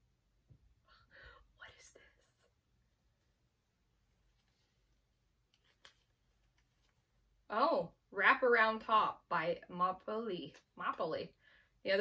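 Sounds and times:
woman whispering: 0.8s - 2.6s.

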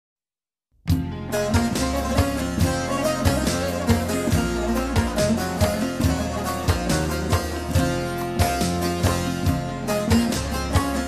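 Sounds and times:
plucked strings folk melody: 0.9s - 11.0s.

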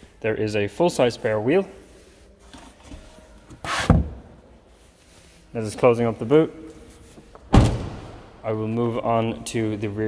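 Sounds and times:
faint rubbing and handling: 0.9s - 7.4s
car boot panel thud: 7.5s - 8.0s.

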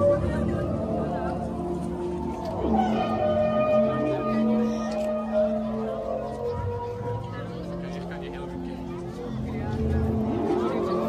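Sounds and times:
outdoor crowd voices: 0.0s - 11.0s
sustained low musical tones: 0.0s - 11.0s.

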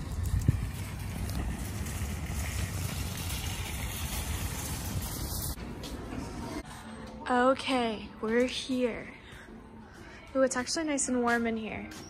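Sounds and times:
wind buffeting microphone: 0.0s - 5.5s.

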